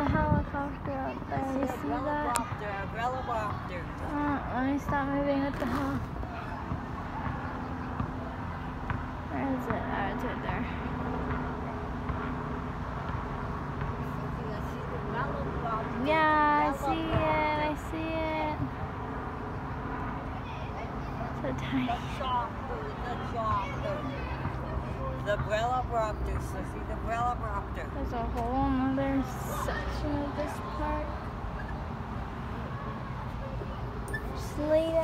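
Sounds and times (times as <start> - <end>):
helicopter engine and rotor drone: 10.9 - 12.7.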